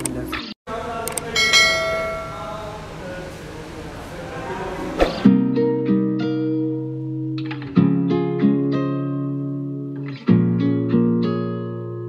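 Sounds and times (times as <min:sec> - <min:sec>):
bright bell chime: 0:01.4 - 0:02.8
background guitar music: 0:05.2 - 0:12.0.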